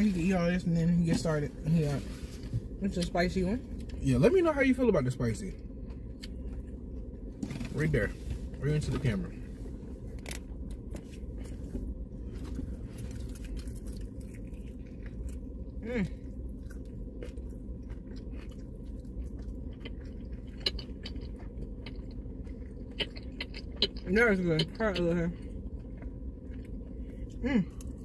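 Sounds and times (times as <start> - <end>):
chewing crispy fried chicken: 12.4 - 28.0.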